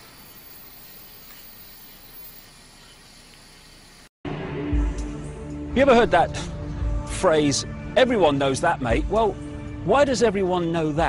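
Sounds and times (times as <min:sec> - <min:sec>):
television static hiss: 0:00.0 - 0:04.1.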